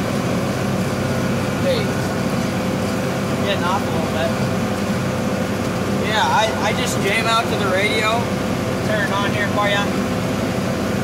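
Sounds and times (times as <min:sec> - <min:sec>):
tractor diesel engine rumbling: 0:00.0 - 0:11.0.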